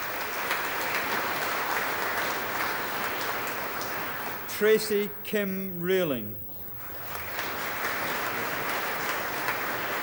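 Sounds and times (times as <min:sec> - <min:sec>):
audience applauding: 0:00.0 - 0:04.5, 0:06.8 - 0:10.0.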